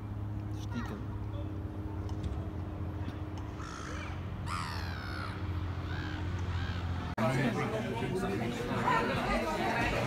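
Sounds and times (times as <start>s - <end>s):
steady low hum: 0.0s - 10.0s
gulls calling: 3.1s - 7.5s.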